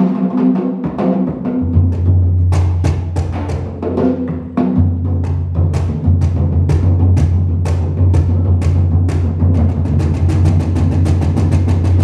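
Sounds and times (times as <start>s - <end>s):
fast drum strokes: 0.0s - 12.0s.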